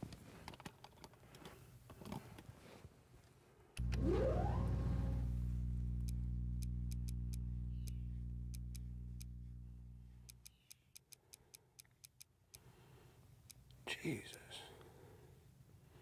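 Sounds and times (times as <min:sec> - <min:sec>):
low electronic drone with whine: 0:03.8 - 0:10.5
light irregular ticks: 0:05.6 - 0:12.8, 0:13.4 - 0:14.9.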